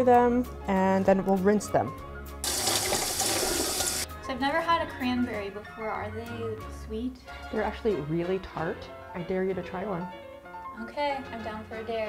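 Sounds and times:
tap water splashing in sink: 2.4 - 4.1.

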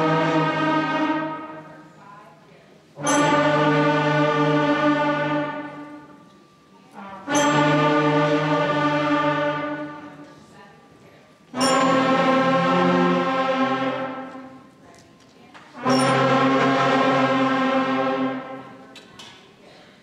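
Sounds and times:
concert band holding long notes: 0.0 - 1.9, 3.0 - 6.3, 7.0 - 10.3, 11.5 - 14.7, 15.8 - 18.8.

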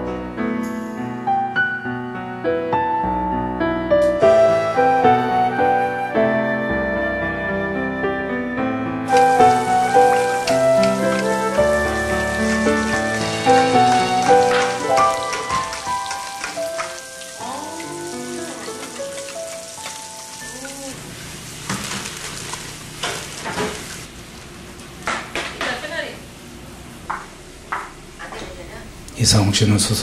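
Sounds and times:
soft piano music: 0.0 - 21.0
food sizzling: 9.0 - 25.1.

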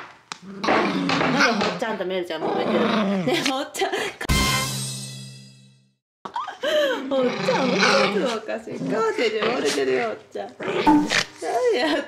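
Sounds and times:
dog growling: 0.4 - 1.8, 2.4 - 3.4, 7.1 - 10.9.

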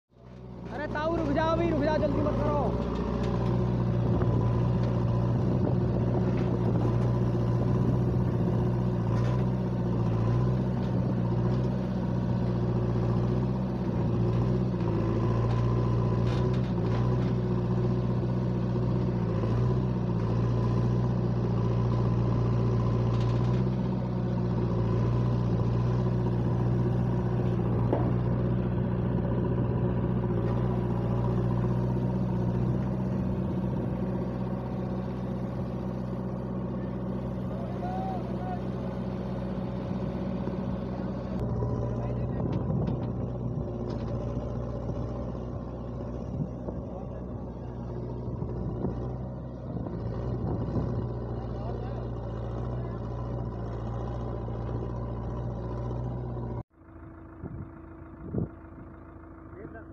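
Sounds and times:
diesel engine running: 0.1 - 59.9.

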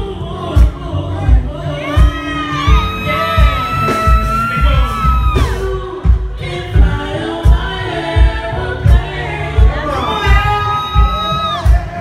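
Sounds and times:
man singing into microphone: 0.0 - 5.8, 9.6 - 12.0
backing track with low beat: 0.0 - 12.0.

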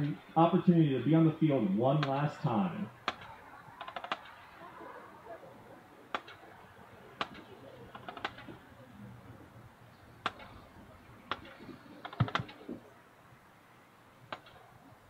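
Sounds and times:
sharp clicks: 2.0 - 2.2, 3.0 - 4.4, 6.1 - 6.4, 7.2 - 8.6, 10.2 - 10.6, 11.3 - 12.8, 14.3 - 14.6.

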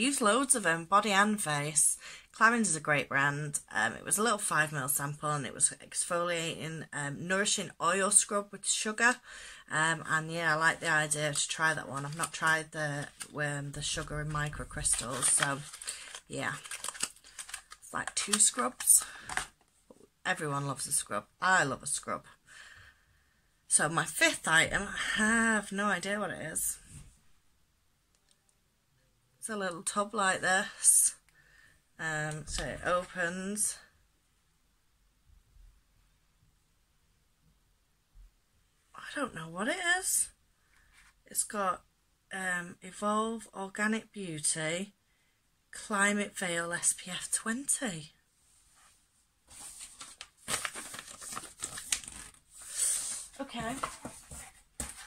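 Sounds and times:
paper packaging crinkling: 11.3 - 19.6, 49.5 - 55.0.

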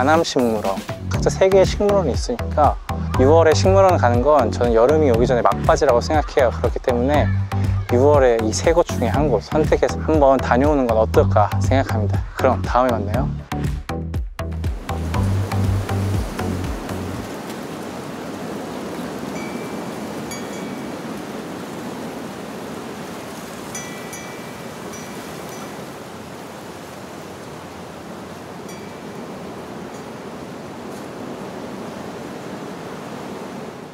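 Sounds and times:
rushing water: 0.0 - 13.9, 14.5 - 33.9
music with bass beat: 0.8 - 4.3, 7.2 - 8.0, 9.2 - 17.3.

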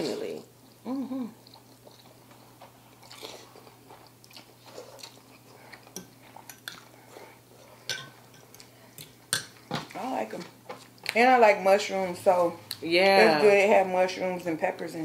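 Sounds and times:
noodles slurped and chewed: 1.4 - 7.4.

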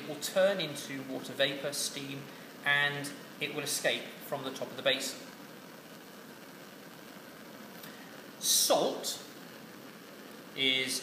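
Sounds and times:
bunsen burner roaring: 0.0 - 11.0.

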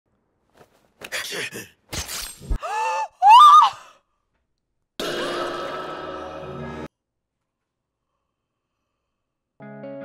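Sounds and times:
woman gasping: 2.6 - 4.0
woman squealing: 2.6 - 4.0.

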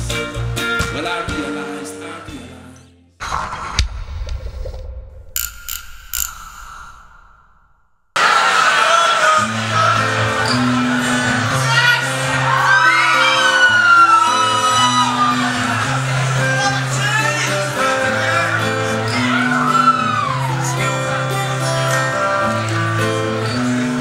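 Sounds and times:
guitar: 0.0 - 3.2, 8.2 - 24.0
scattered clicks: 5.4 - 7.4
voices whooping: 8.2 - 16.1, 18.3 - 21.2.

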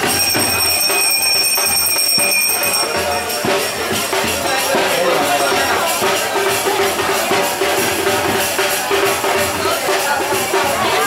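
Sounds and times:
bell ringing: 0.0 - 7.9
percussion with jingles: 0.0 - 11.0.

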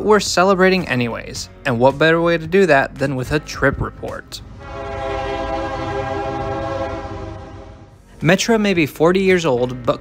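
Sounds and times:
train horn blast: 4.5 - 8.0.

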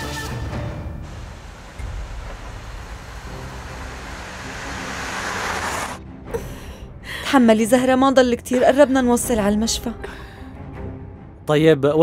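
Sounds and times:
car engine and tyre noise: 0.8 - 6.7.

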